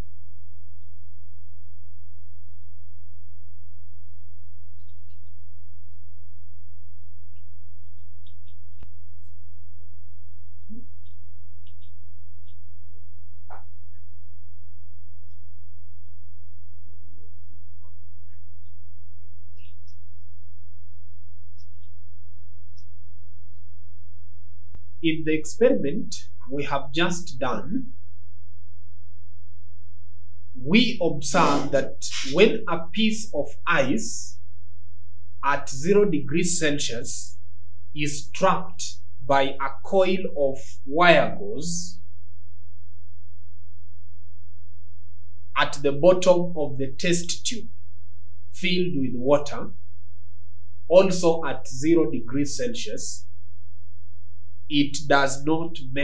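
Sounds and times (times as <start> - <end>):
low-pitched hum: 0.0 - 56.0.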